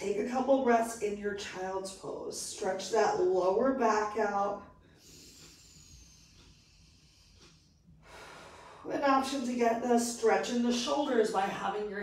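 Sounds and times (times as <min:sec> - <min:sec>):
person breathing softly: 0:04.8 - 0:08.9.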